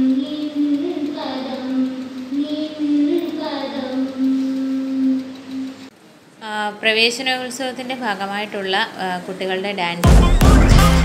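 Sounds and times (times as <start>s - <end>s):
children singing slowly: 0.0s - 5.9s.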